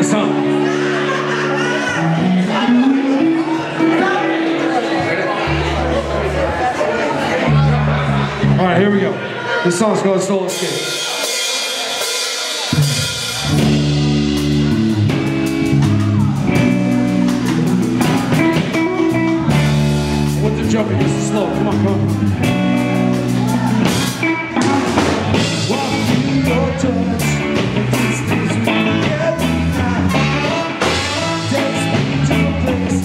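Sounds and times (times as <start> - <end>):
live ska punk band: 0.0 - 6.4, 10.4 - 33.0.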